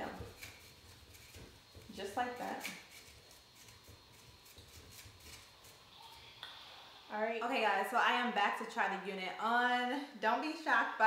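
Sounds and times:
hair pick rustling through hair: 0.0s - 6.2s.

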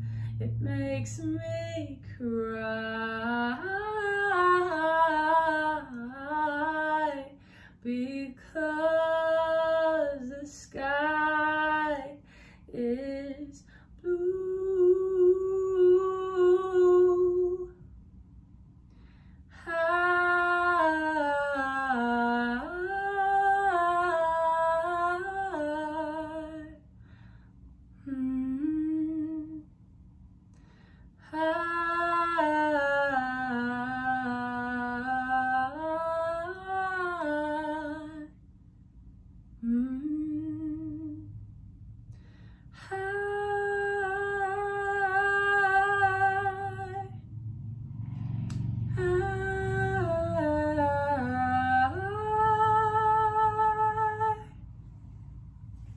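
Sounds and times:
woman singing held vowel: 0.0s - 17.8s, 28.0s - 29.7s, 31.3s - 38.3s, 42.8s - 47.2s, 48.9s - 54.6s.

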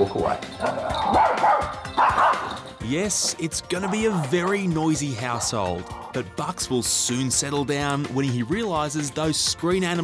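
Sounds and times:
background music: 0.0s - 10.0s
small dog barking: 0.6s - 2.6s.

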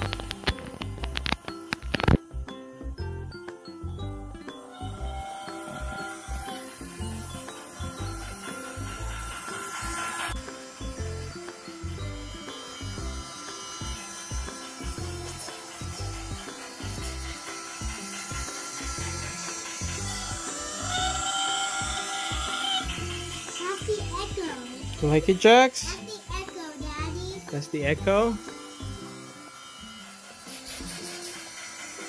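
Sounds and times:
toy train motor rattling: 0.0s - 2.5s, 4.4s - 32.0s
music playing: 0.0s - 32.0s.

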